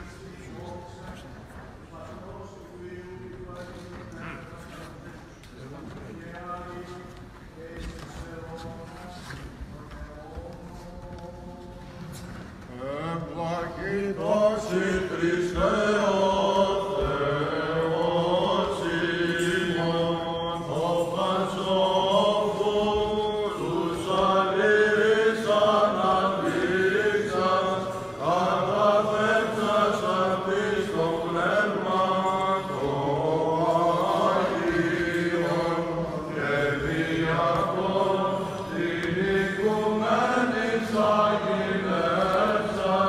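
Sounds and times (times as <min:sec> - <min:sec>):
low held vocal drone: 0:10.2 - 0:43.0
men chanting: 0:12.9 - 0:43.0.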